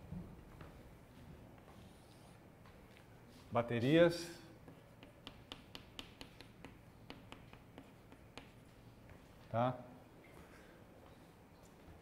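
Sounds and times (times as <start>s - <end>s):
chalk tapping and scraping: 4.6s - 9.2s.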